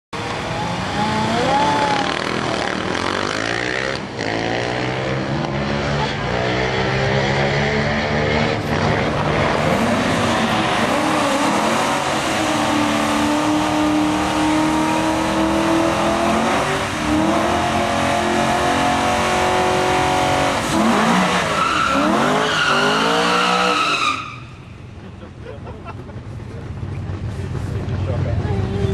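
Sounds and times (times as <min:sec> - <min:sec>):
engines revving: 0:00.2 - 0:28.9
tyre squeal: 0:21.4 - 0:24.7.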